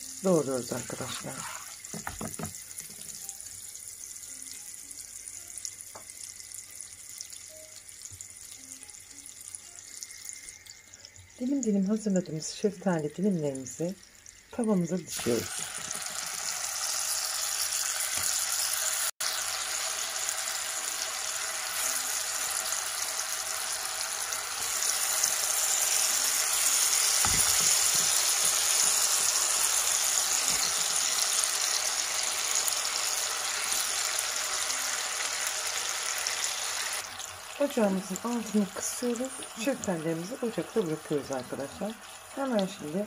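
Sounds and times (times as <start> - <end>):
syrup sizzling in a frying pan: 0.0 - 43.0.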